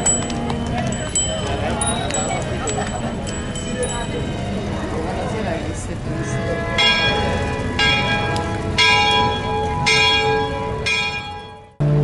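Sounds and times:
church bell tolling: 0.0s - 11.9s.

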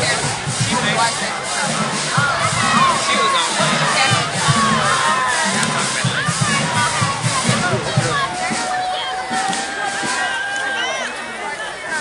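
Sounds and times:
marching band drums: 0.0s - 11.2s
crowd cheering and shouting: 0.0s - 12.0s.

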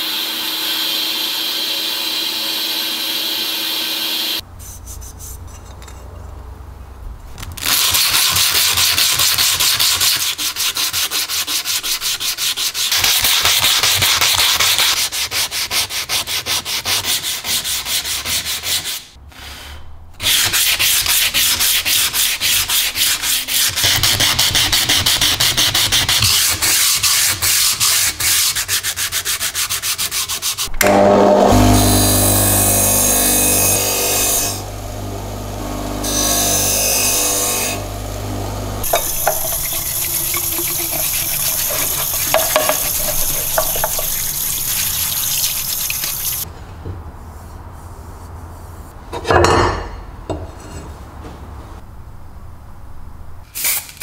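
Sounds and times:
sandpaper sanding metal: 4.6s - 5.6s, 7.6s - 19.2s, 20.2s - 30.7s, 38.8s - 46.5s
scrubbing under running tap: 38.8s - 46.4s.

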